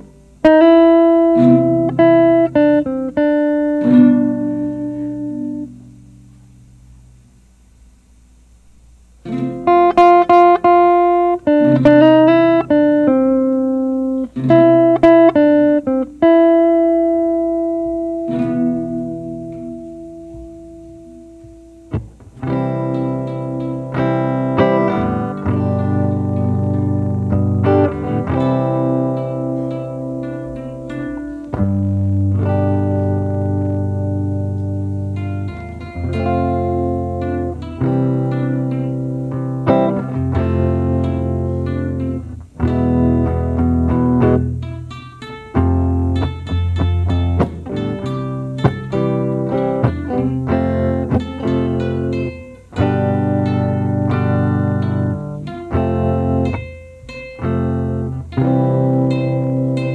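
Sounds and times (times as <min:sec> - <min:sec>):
electric and acoustic guitars: 0:00.0 - 0:07.2, 0:08.6 - 0:59.9.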